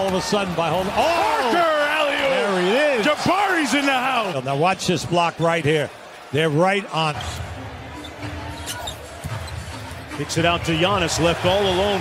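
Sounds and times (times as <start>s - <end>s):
arena crowd noise: 0.0s - 12.0s.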